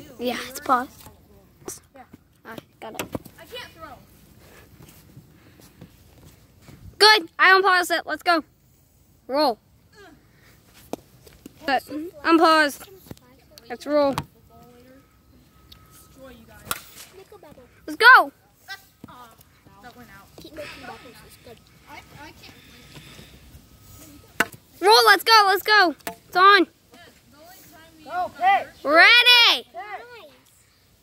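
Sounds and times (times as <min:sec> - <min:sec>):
plastic bat hitting ball: 0:16.6 - 0:17.1, 0:26.0 - 0:26.2.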